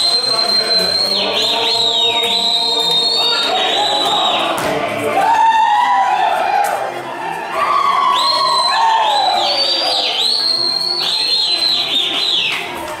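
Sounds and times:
high sliding whistles: 0:00.0 - 0:04.6, 0:08.2 - 0:12.6
string band folk dance music: 0:00.0 - 0:13.0.

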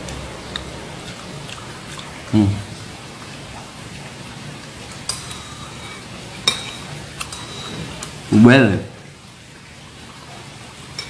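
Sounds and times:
steady background noise: 0:00.0 - 0:11.0
cutlery clinking against plate: 0:05.0 - 0:08.1.

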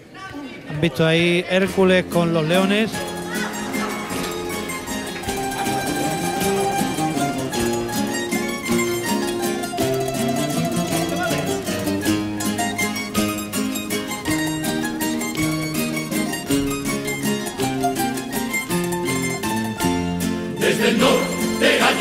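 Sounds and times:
plucked string band playing: 0:01.8 - 0:22.0.

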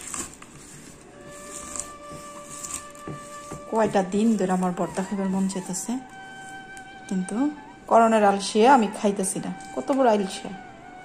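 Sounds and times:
hand mashing chillies on plate: 0:00.0 - 0:06.6
held note of background music: 0:01.1 - 0:11.0.

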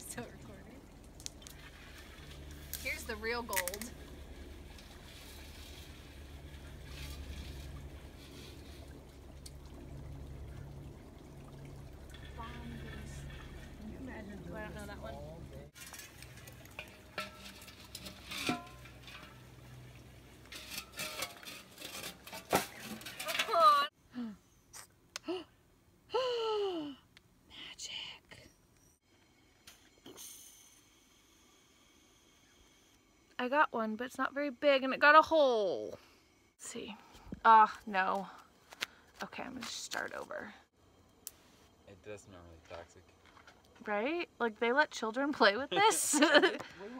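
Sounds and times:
creek water sloshing: 0:00.0 - 0:23.5.

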